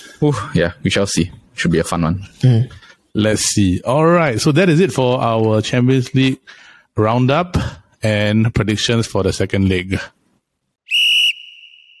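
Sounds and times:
high whistle blast with echo: 10.9s - 12.0s.

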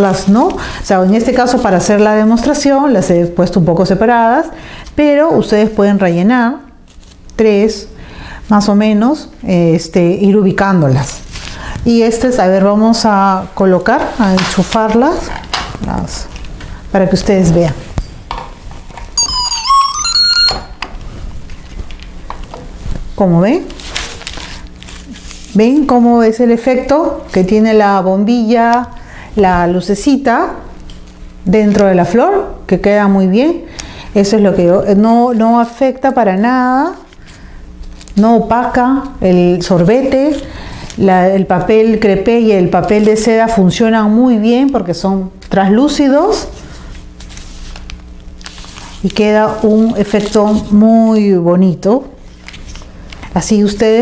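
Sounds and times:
electronic beeping melody: 19.2s - 20.8s
paper rustling: 23.7s - 25.6s, 46.8s - 50.8s, 52.2s - 53.3s.

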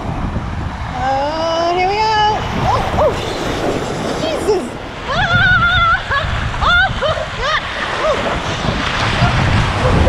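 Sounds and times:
wind buffeting microphone: 0.0s - 10.0s
water rushing down a slide: 2.2s - 10.0s
woman laughing and whooping: 4.3s - 8.4s, 9.0s - 10.0s.

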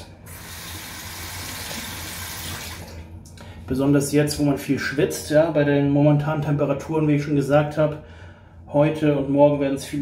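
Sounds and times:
tap water running into sink: 0.3s - 3.1s.

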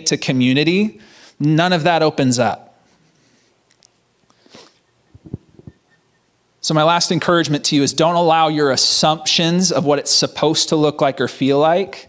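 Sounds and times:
person sniffing: 2.8s - 3.7s, 4.3s - 4.9s
soft low thumps: 5.1s - 5.8s.

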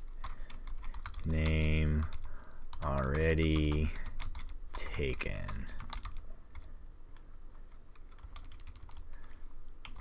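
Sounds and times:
keyboard typing clicks: 0.2s - 9.1s.

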